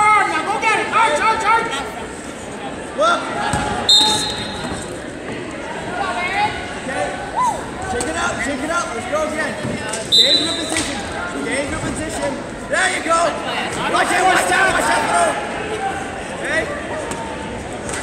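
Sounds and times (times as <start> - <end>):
voices calling out in echoing hall: 0.0 - 18.0
referee's whistle: 3.9 - 4.8, 10.1 - 10.9.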